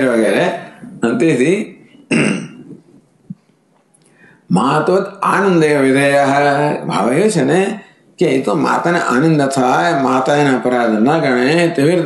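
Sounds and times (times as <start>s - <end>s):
man clearing throat: 2.1s - 2.8s.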